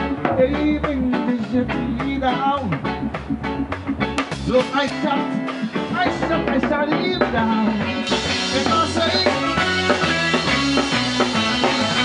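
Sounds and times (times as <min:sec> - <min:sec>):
deep bass line: 0:00.0 - 0:12.0
drum kit beat: 0:00.0 - 0:12.0
guitar: 0:00.0 - 0:12.0.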